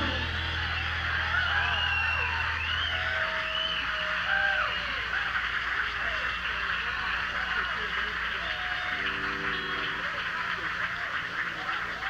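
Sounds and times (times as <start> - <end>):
audience whistles and shouts: 0.0 - 12.0
low amplifier hum: 0.0 - 12.0.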